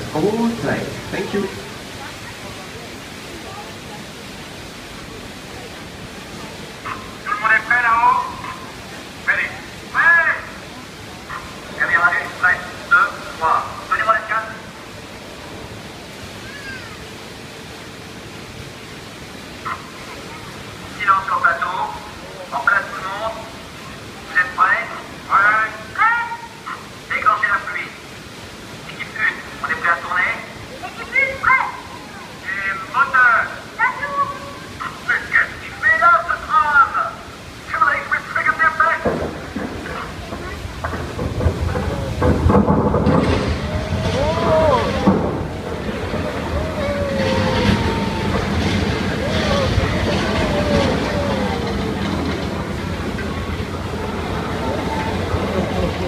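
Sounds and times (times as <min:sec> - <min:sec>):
loud rumbling roar: 0:39.0 - 0:56.0.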